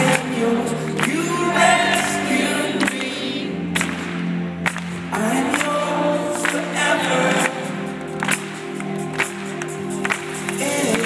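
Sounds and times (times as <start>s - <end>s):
voices singing: 0.0s - 3.9s, 5.1s - 8.3s
pop band playing: 0.0s - 11.0s.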